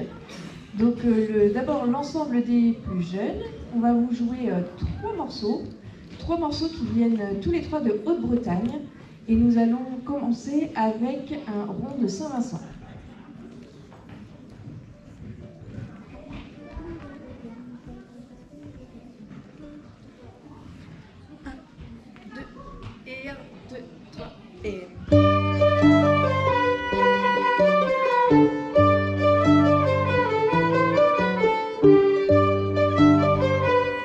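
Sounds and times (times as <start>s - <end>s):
folk ensemble playing dance tune: 25.1s - 34.0s.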